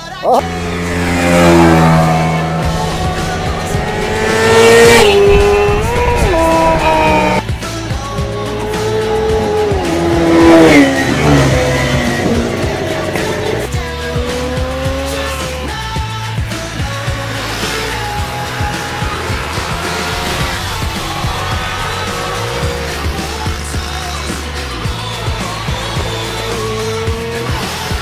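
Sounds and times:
motorcycle engines revving past: 0.4s - 28.0s.

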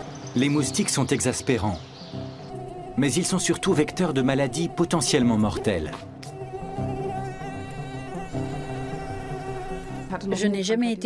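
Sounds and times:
low background music: 0.0s - 11.0s
mosquito whine: 2.1s - 10.5s.

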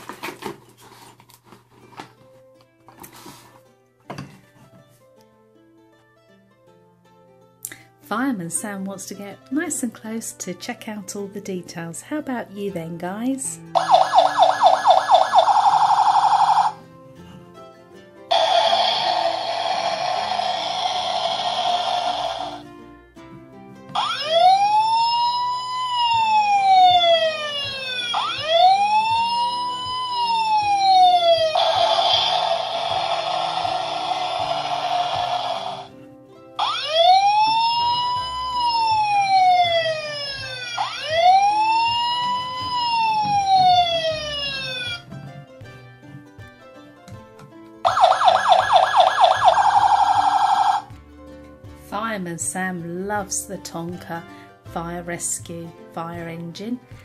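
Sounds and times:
faint background music: 0.0s - 57.0s
toy siren sound effects: 13.8s - 16.8s, 18.3s - 22.6s, 24.0s - 35.9s, 36.6s - 45.0s, 47.8s - 50.9s
harsh electronic noise: 18.3s - 22.6s, 31.5s - 35.9s.

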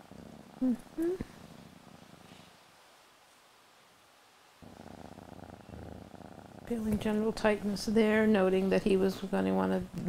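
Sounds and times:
cat purring: 0.0s - 2.7s, 4.6s - 10.0s.

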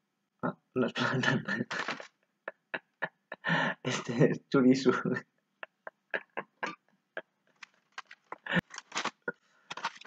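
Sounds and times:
man laughing breathily: 1.2s - 4.2s, 5.5s - 7.6s, 8.3s - 8.8s.

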